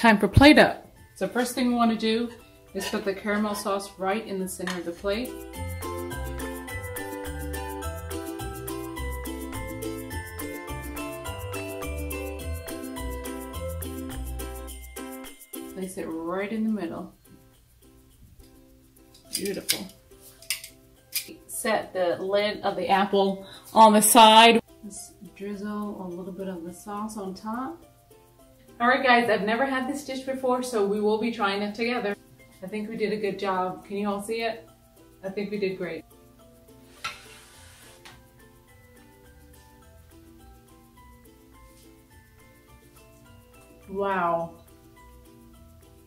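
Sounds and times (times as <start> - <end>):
plucked strings music with beat: 1.2 - 21.3, 38.0 - 46.0
person speaking: 23.7 - 24.6
fork scraping plate: 36.9 - 38.2.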